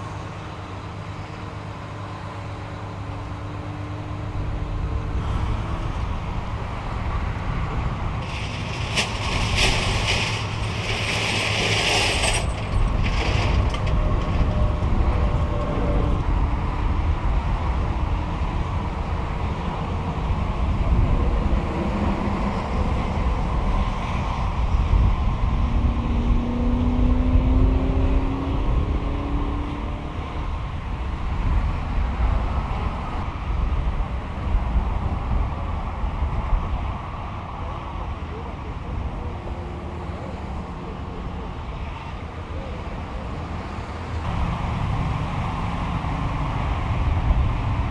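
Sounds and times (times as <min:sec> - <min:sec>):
highway traffic passing: 0:00.0 - 0:47.9
constant low rumble: 0:04.3 - 0:26.4.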